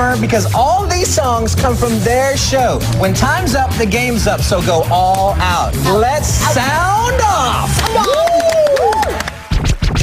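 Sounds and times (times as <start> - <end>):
distorted remixed song: 0.0 - 10.0
heavy beat: 0.0 - 10.0
swooping ooh vocal: 5.7 - 9.3
turntable scratching: 9.4 - 10.0.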